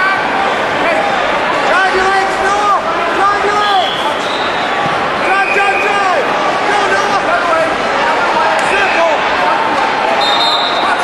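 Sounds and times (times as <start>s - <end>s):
crowded gym din: 0.0s - 11.0s
people shouting and calling out: 0.0s - 11.0s.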